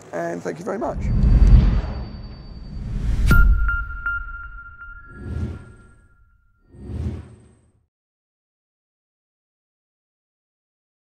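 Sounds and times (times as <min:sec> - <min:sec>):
whoosh sound effect: 0:00.8 - 0:06.0
high ringing tone: 0:01.0 - 0:06.6.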